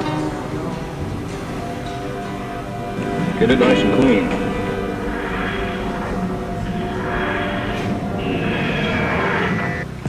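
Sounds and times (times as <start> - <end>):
music with sustained tones: 0.0 - 10.0.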